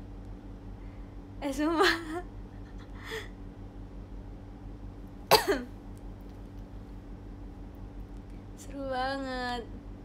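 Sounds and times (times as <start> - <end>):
woman coughing: 5.3 - 5.7.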